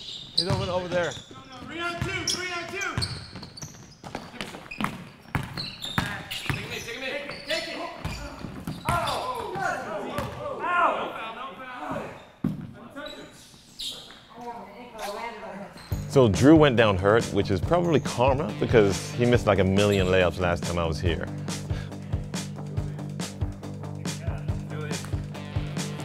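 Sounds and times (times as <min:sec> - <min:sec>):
basketball bouncing on hardwood: 0:03.0 - 0:06.7
players calling out: 0:05.6 - 0:12.2.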